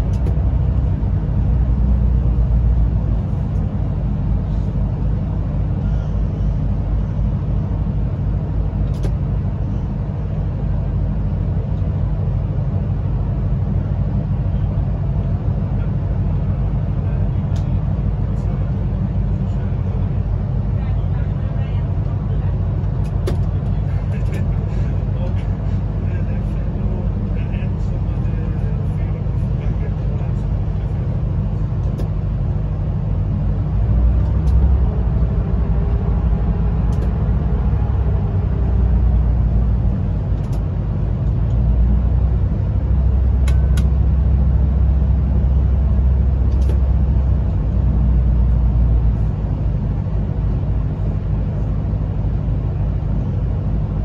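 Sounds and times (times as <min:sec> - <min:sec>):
train wheels rumbling on rail: 0:00.0 - 0:54.0.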